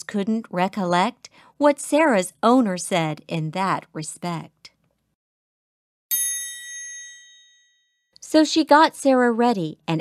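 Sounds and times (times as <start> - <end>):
high bell-like chime: 6.1 - 8.1.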